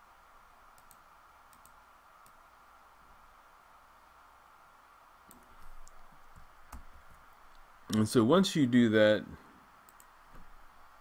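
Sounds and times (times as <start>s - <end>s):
low background hiss: 0.0s - 11.0s
faint computer clicks: 0.7s - 2.4s, 5.2s - 6.9s, 9.8s - 10.5s.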